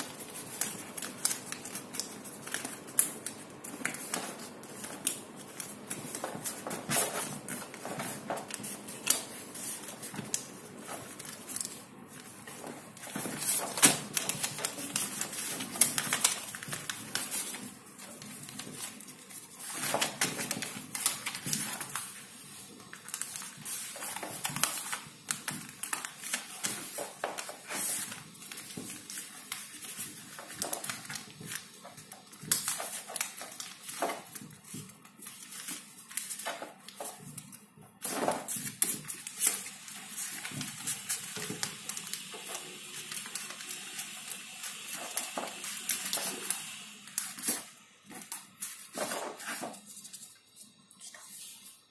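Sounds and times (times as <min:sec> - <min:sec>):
paper folding and crinkling: 0:00.0 - 0:51.9.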